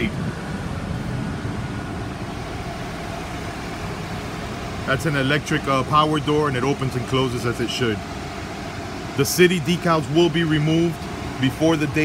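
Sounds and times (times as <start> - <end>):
diesel engine idling: 0.0 - 12.0.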